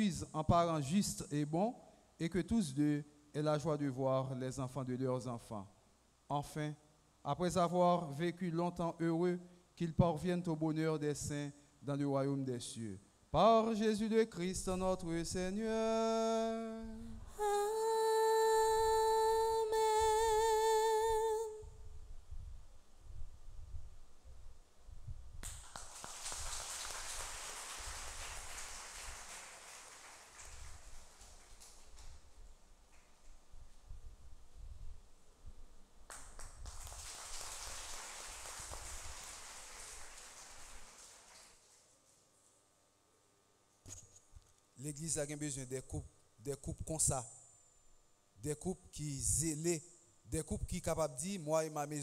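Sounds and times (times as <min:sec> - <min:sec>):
person singing long held note: 0:15.6 - 0:21.8
congregation applauding: 0:25.4 - 0:32.3, 0:36.1 - 0:41.8.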